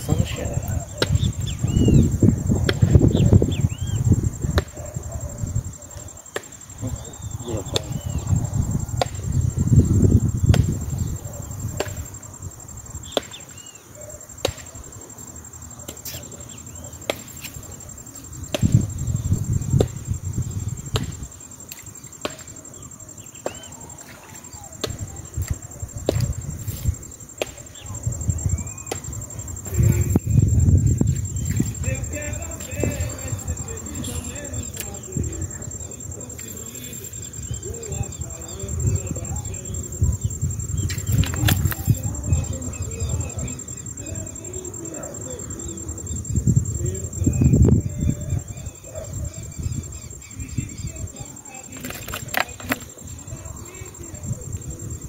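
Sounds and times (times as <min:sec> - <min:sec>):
wind buffeting microphone: 0:00.0 - 0:13.2, 0:17.5 - 0:21.6, 0:24.5 - 0:36.4, 0:37.1 - 0:55.0
sharp clicks: 0:51.7 - 0:53.0.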